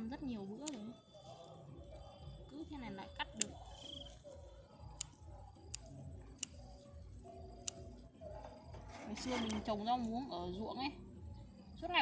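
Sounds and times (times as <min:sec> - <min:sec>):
scissors snipping stems: 0:00.6 - 0:00.9, 0:03.2 - 0:04.2, 0:04.8 - 0:06.8, 0:07.5 - 0:08.0.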